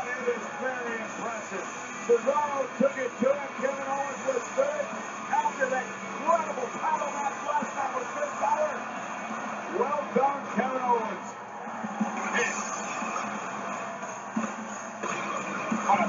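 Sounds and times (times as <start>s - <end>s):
commentator talking: 0.0s - 8.9s, 9.7s - 11.4s, 12.2s - 12.7s
music: 0.0s - 16.0s.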